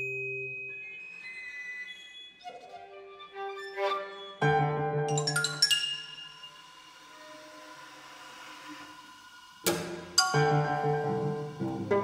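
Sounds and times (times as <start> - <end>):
soft sustained chamber music: 0.0 - 12.0.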